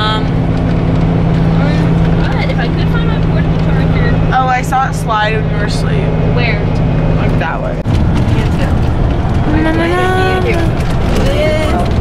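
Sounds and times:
bus engine drone: 0.0 - 12.0
road noise: 0.0 - 12.0
passengers chattering: 1.4 - 12.0.

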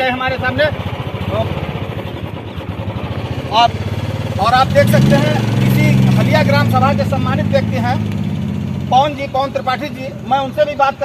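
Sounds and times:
engine running steadily: 0.0 - 11.0.

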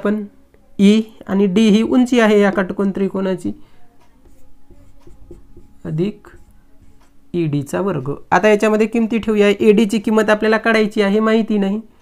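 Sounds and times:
marker writing on whiteboard: 1.8 - 7.3.

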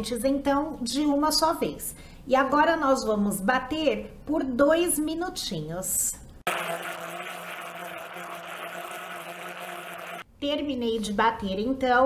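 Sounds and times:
blender running: 6.5 - 10.3.

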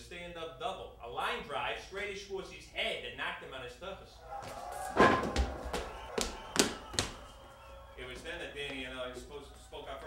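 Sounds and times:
voices: 3.6 - 10.0
loud thud: 4.5 - 7.2.

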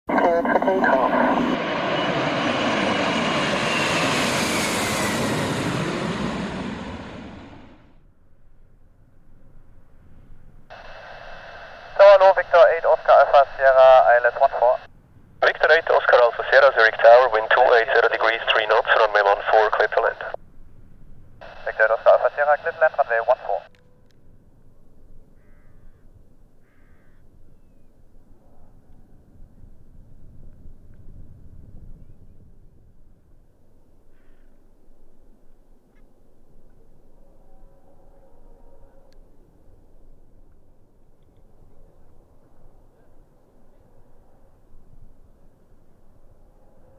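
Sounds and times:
aircraft engine roar: 0.1 - 8.1, 9.0 - 35.6
faint engine whine: 0.1 - 46.9
low steady background rumble: 7.2 - 37.4.

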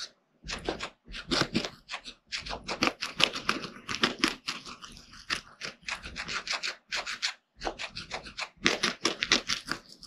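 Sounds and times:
guinea pig chewing crisp bites: 0.0 - 10.0.

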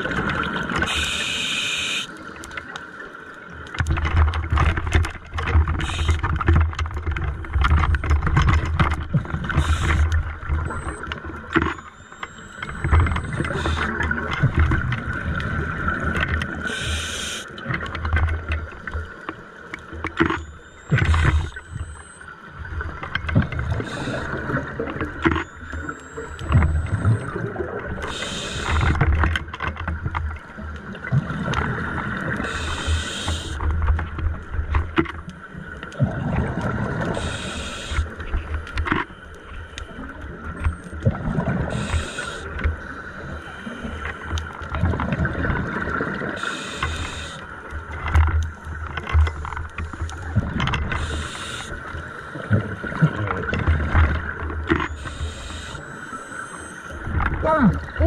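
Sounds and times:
regulator inhale hiss: 0.9 - 2.1, 16.6 - 17.4, 28.1 - 28.8, 32.5 - 33.6, 37.2 - 38.0, 41.8 - 42.4, 46.4 - 47.4, 51.0 - 51.8, 55.0 - 56.9
exhaled bubbles rumbling: 36.0 - 37.2, 40.3 - 41.9, 44.7 - 46.4.

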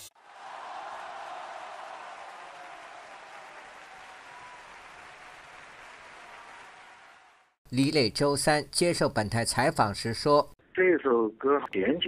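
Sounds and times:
applause: 0.2 - 7.6.

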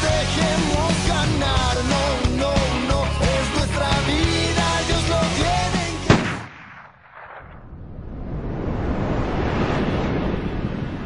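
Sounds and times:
rock music: 0.0 - 6.3.

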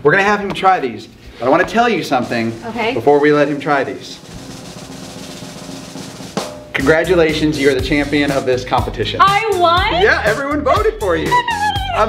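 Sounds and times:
snare drum roll: 1.4 - 9.3.

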